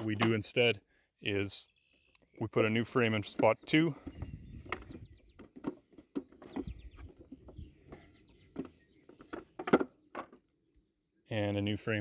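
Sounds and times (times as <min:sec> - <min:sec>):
wooden frames knocking and clicking: 0:03.1 - 0:10.5.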